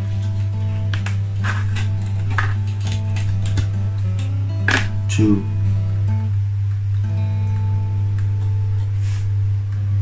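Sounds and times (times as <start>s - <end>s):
background music with sustained notes: 0.0s - 10.0s.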